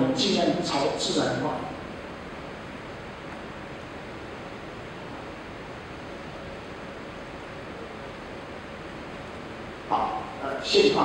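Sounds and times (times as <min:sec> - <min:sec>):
faint steady hum: 0:00.0 - 0:11.0
steady room noise hiss: 0:00.0 - 0:11.0.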